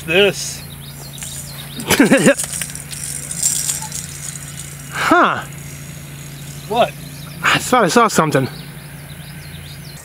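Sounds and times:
low steady hum: 0.0s - 10.0s
fishing line running off reel: 1.2s - 7.7s.

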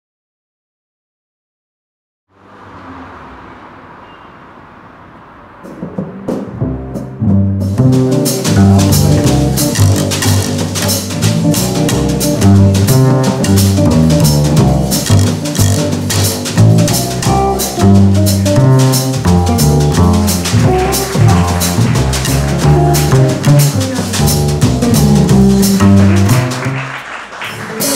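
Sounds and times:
drums and cymbals: 5.3s - 26.8s
double bass notes: 5.9s - 27.0s.

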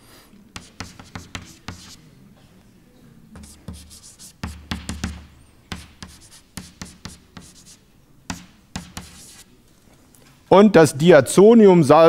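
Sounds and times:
chalk tapping and scraping on blackboard: 0.6s - 2.1s, 3.4s - 9.5s.

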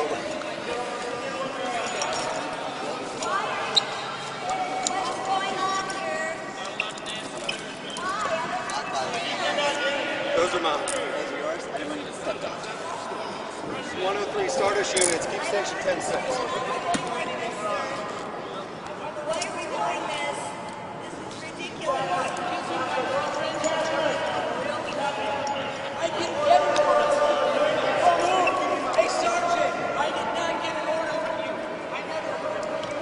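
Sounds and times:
people talking over each other: 0.0s - 33.0s.

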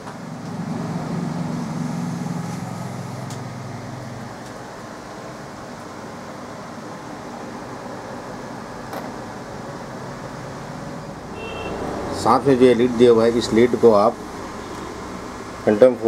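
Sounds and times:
mechanical hum and hiss: 0.0s - 16.0s.

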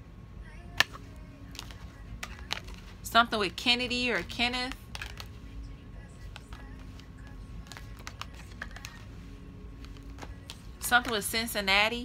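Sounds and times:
cards tapping on cloth: 0.8s - 2.9s, 4.2s - 5.4s, 6.2s - 9.2s, 9.8s - 11.3s.

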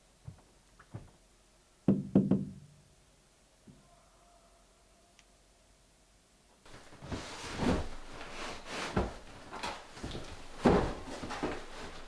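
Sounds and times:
hollow knocks: 1.9s - 2.7s.

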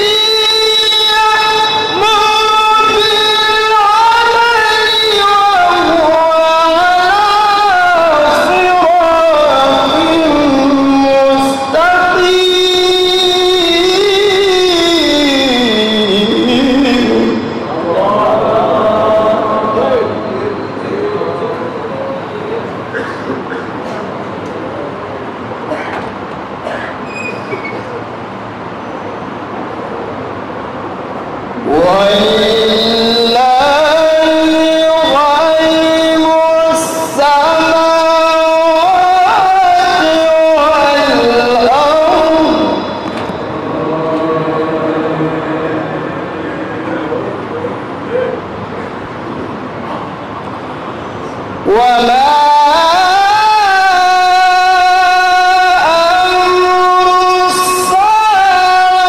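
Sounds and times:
man chanting a long note: 31.6s - 48.5s.

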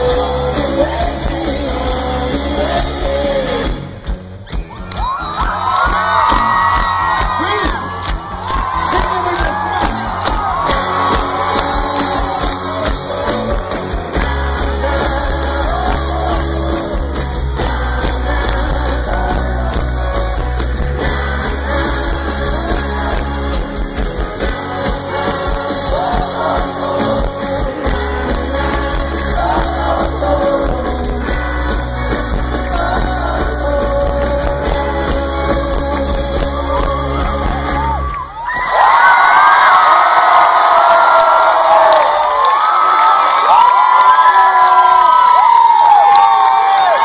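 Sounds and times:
live rock band: 0.0s - 39.0s.

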